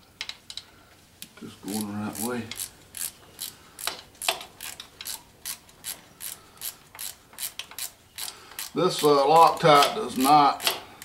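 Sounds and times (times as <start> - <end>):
socket ratchet clicking: 1.7 - 10.8.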